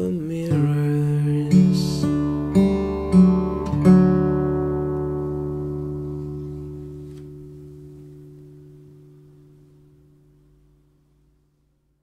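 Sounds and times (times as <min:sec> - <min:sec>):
acoustic guitar chord ringing: 0:00.0 - 0:11.4.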